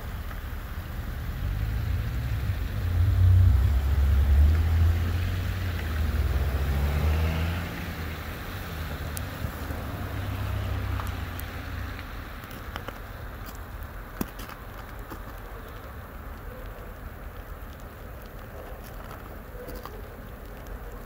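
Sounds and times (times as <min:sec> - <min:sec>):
locomotive low rumble: 0:00.0 - 0:06.8.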